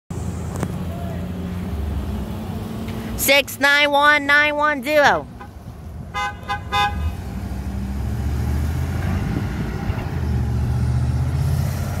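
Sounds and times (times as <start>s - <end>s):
truck engine droning: 0.1s - 12.0s
truck horn toots: 5.4s - 7.2s.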